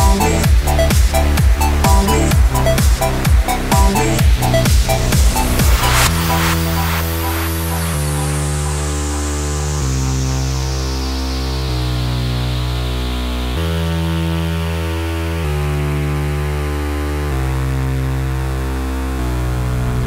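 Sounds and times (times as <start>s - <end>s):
falling noise sweep: 0.0s - 11.7s
synth chords over heavy bass: 0.0s - 20.0s.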